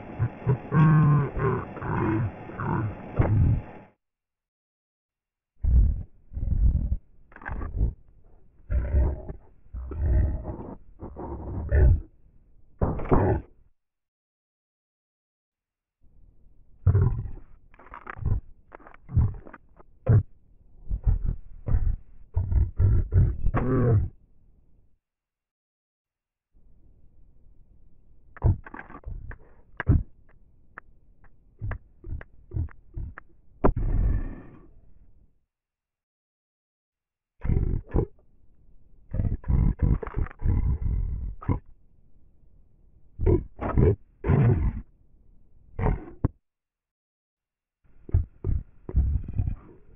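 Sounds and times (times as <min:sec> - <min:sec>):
distorted low growl-like bursts: 0:00.0 - 0:03.9.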